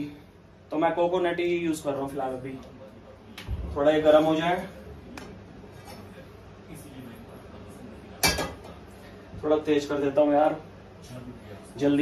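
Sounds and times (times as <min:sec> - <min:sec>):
kitchenware clattering: 0:08.2 - 0:08.8.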